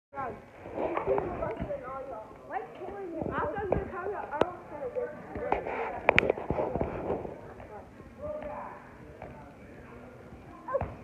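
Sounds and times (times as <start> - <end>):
children calling and chattering: 0.2 - 11.0.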